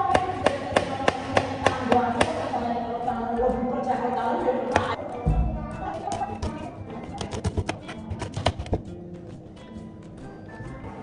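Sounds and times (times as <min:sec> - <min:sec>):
background music: 0:00.0 - 0:11.0
knife chopping on plastic board: 0:07.2 - 0:08.9.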